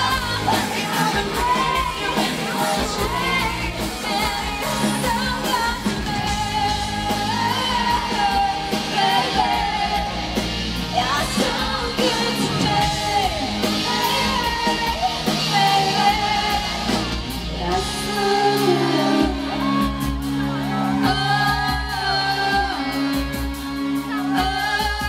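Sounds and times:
female vocal singing: 0.0s - 25.0s
pop-rock band playing: 0.0s - 25.0s.

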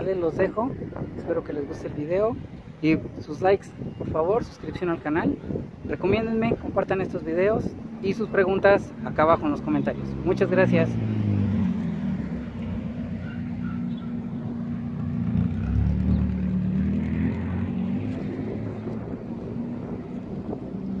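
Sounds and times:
vehicle engine humming: 8.8s - 21.0s.

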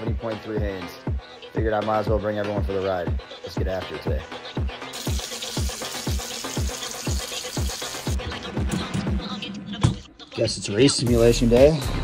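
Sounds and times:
electronic dance music: 4.6s - 12.0s
even hiss: 5.0s - 8.2s.

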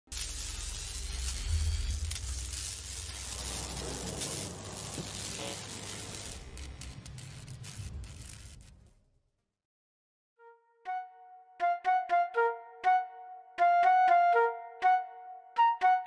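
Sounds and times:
crackling sizzling electronic noise: 0.1s - 9.1s.

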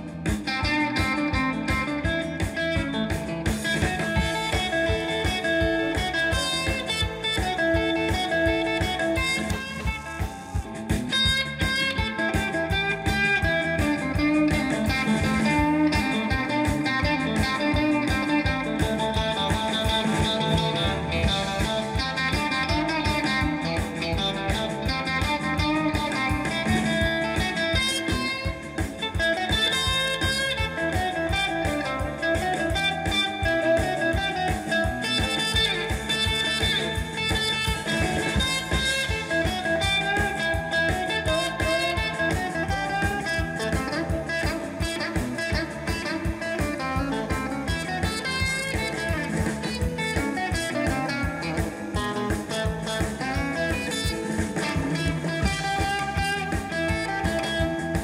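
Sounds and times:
live blues band playing: 0.0s - 58.0s.

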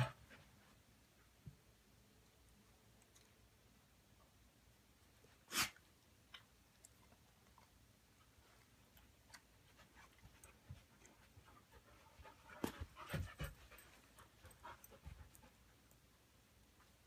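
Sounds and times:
dogs panting: 9.3s - 15.8s.

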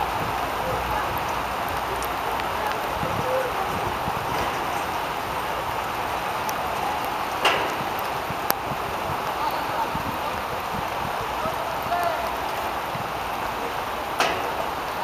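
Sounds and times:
distant players' voices: 0.0s - 15.0s
steady rushing noise: 0.0s - 15.0s.

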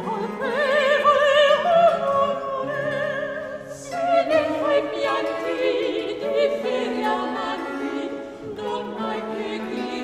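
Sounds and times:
opera voices singing together: 0.0s - 10.0s.

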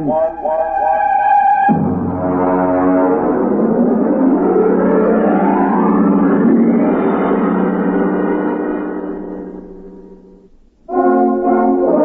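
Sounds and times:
brass-heavy orchestral theme music: 0.5s - 6.3s, 10.9s - 12.0s.

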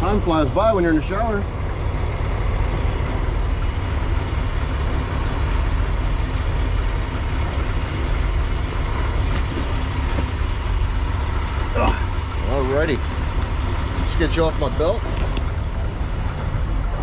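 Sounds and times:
diesel engine idling: 0.0s - 17.0s
handling clicks and rustles: 8.0s - 15.7s.

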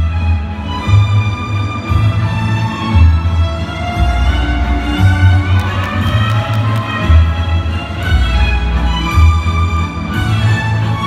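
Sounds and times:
waltz music with strings: 0.0s - 11.0s
sharp claps: 5.4s - 7.4s
crowd cheering: 5.4s - 7.6s.

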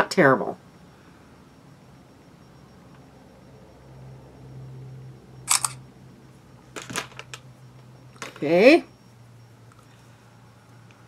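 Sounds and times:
camera shutter double click: 5.5s - 5.8s.

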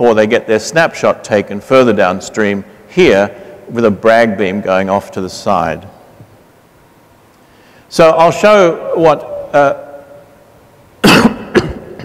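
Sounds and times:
man coughing: 11.0s - 12.0s.

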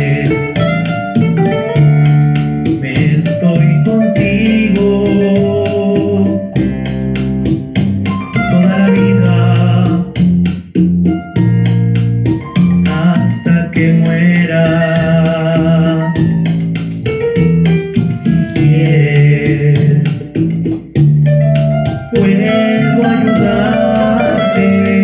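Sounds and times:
bass line: 0.0s - 25.0s
organ-like keyboard chords: 0.0s - 25.0s
classical guitar plucking: 0.3s - 2.6s.

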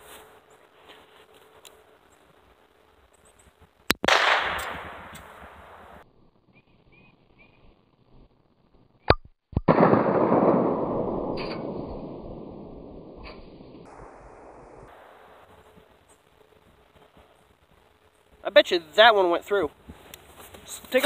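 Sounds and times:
revolver gunshots: 4.0s - 6.0s, 9.6s - 15.8s.

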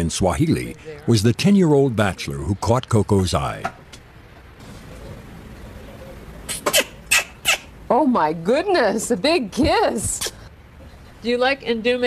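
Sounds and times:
gorilla kissing smacks: 6.5s - 7.7s, 10.2s - 10.4s.

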